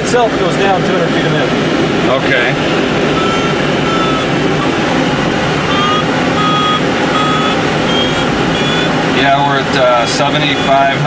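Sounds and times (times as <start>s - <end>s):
steady airflow noise: 0.0s - 11.0s
short electronic beeps: 3.2s - 8.9s, 9.8s - 11.0s.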